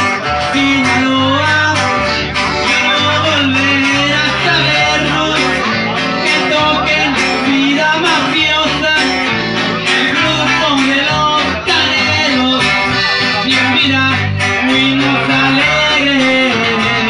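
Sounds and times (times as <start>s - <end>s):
live band with accordion and guitars: 0.0s - 17.0s.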